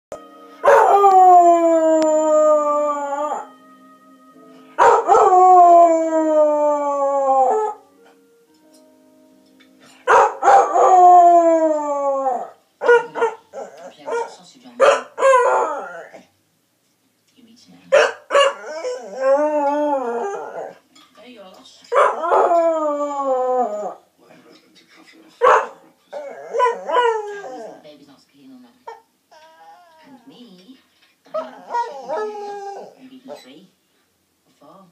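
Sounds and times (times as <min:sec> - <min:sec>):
faint tv theme music: 0:00.1 - 0:34.9
dog howling: 0:00.6 - 0:03.5, 0:04.8 - 0:07.9, 0:10.1 - 0:14.3, 0:15.0 - 0:16.2, 0:18.3 - 0:20.8, 0:22.0 - 0:24.0, 0:25.5 - 0:27.8, 0:29.3 - 0:30.3, 0:31.3 - 0:33.0.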